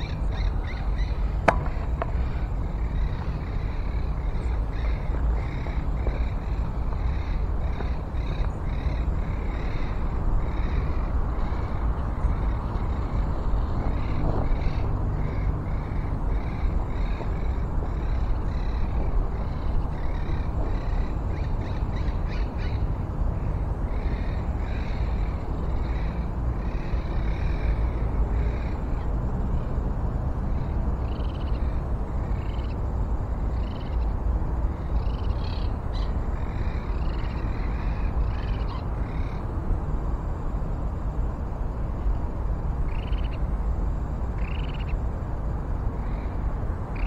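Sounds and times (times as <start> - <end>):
steady low rumble: 0.0 - 47.0.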